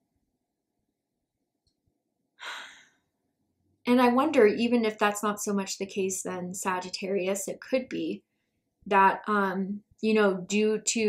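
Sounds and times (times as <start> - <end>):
woman sighing: 2.4 - 2.9
woman speaking: 3.9 - 8.2, 8.9 - 11.0.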